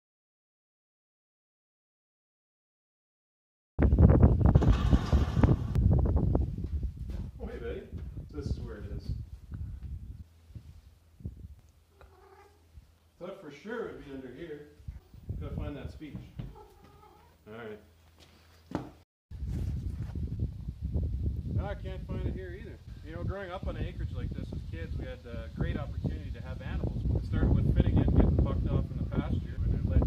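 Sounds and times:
wind buffeting microphone: 3.8 - 11.6, 14.8 - 16.6, 19.3 - 30.0
knocks and thumps: 4.5 - 5.8, 16.0 - 17.0, 18.7 - 19.0
cat meowing: 11.9 - 12.7, 16.4 - 17.4.

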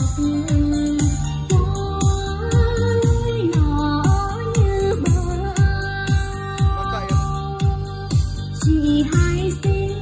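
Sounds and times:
deep kick drum: 0.0 - 9.9
music with steady beat: 0.0 - 10.0.

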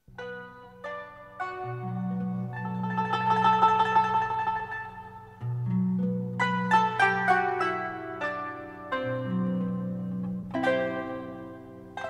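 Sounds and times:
plucked string instrument music: 0.0 - 12.0.

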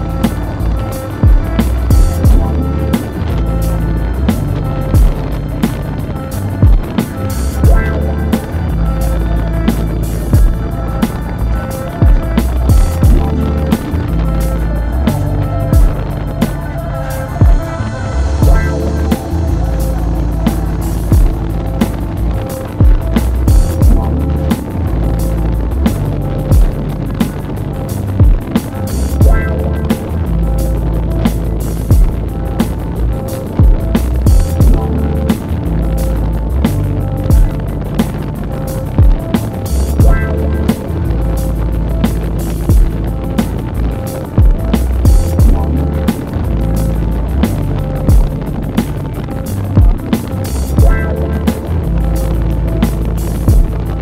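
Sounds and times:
heavy deep bass notes: 0.0 - 54.0
music with drum beat: 0.0 - 54.0.

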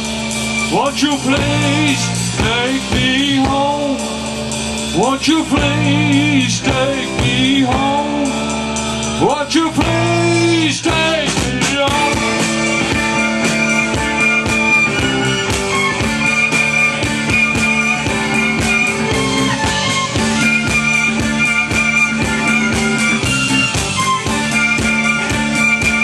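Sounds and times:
drum kit steady beat: 0.0 - 26.0
electric guitars: 0.0 - 26.0.

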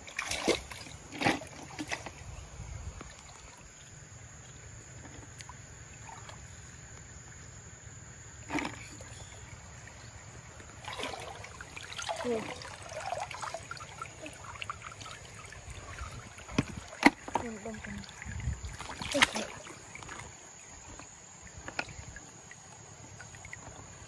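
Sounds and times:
hands splashing in stream water: 10.6 - 20.4.

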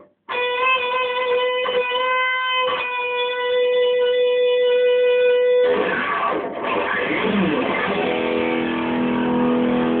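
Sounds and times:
electric guitar note ringing: 0.3 - 10.0.

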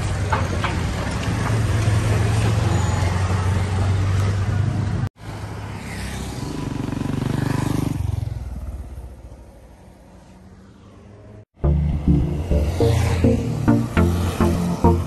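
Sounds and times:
motorcycle passing: 3.2 - 15.0.

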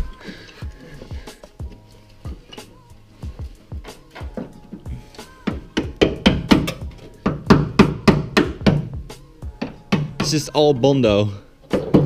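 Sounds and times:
hand tool knocking on metal: 5.4 - 9.0, 9.6 - 10.4.

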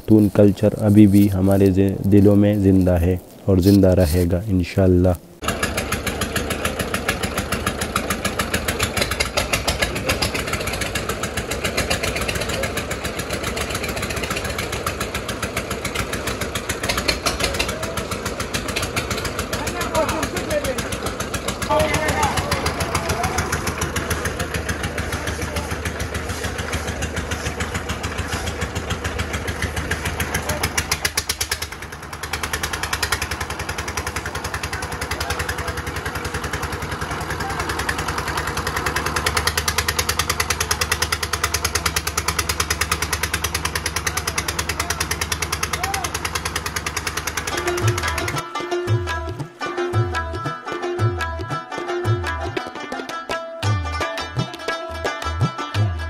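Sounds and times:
diesel engine knocking steadily: 5.4 - 50.3.

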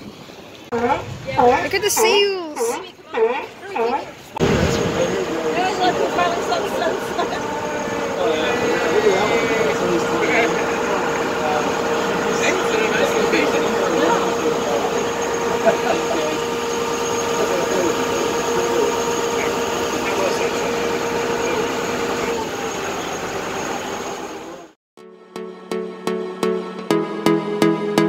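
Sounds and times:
small boat motor running: 0.0 - 24.8
people's voices: 0.8 - 23.2.

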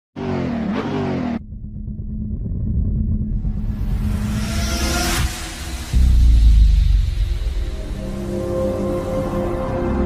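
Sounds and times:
low rumble: 1.4 - 9.4.

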